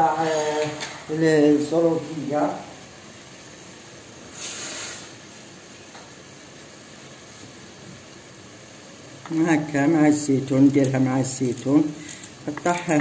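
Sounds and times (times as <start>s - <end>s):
chicken sizzling in a pan: 0.0s - 13.0s.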